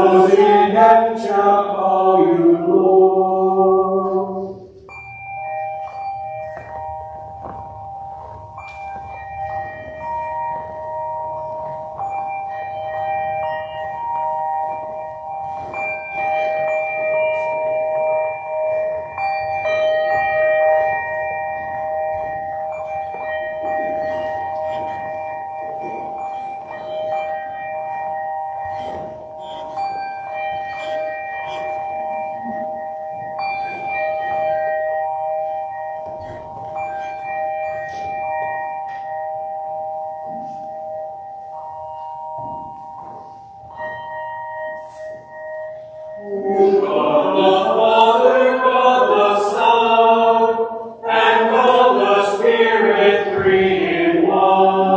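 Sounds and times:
pipe organ sustained chords: 0:05.8 - 0:54.9.

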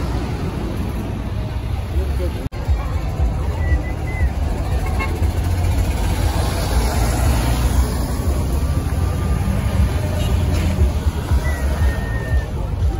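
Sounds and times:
large vehicle engines rumbling: 0:00.0 - 0:12.9.

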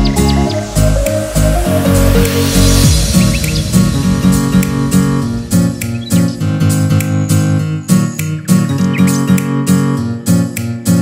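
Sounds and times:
acoustic guitar strumming: 0:03.1 - 0:11.0.

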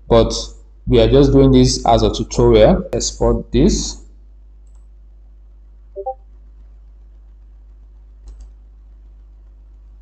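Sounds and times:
low steady hum: 0:00.0 - 0:10.0
computer mouse clicks: 0:04.6 - 0:04.9, 0:08.2 - 0:08.6.

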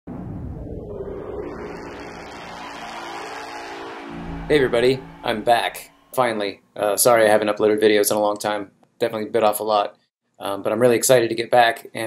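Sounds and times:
held low synth tones: 0:00.1 - 0:06.4
synthesized rushing noise wash: 0:00.3 - 0:06.3.

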